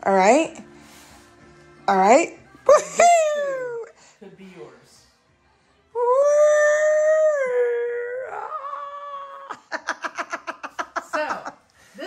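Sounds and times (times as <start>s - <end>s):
laughter: 9.5s - 11.6s.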